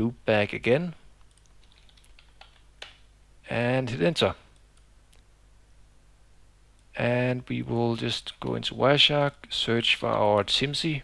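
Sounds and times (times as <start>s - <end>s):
faint keyboard keystrokes: 1.2s - 3.0s.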